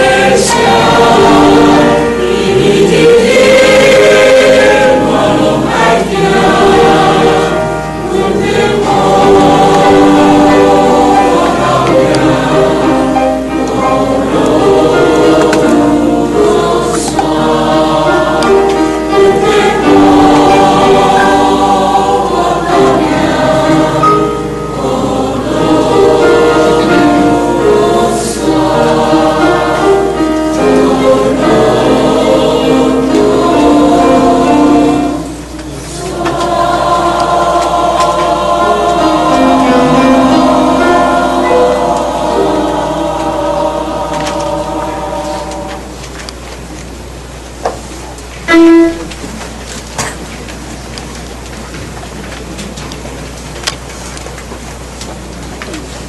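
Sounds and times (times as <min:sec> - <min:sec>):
choir singing a hymn: 0:00.0 - 0:50.3.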